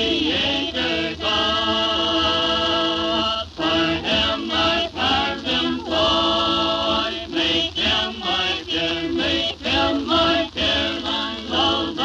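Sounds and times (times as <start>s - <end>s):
group singing a cappella harmony: 0.0s - 12.0s.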